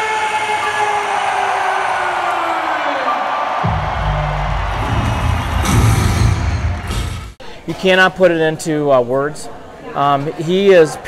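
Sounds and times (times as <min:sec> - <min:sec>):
large crowd noise: 0:00.0 - 0:11.0.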